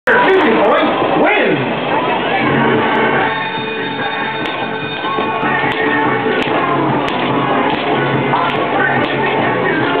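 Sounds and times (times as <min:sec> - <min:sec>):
music playing: 0:00.1 - 0:10.0.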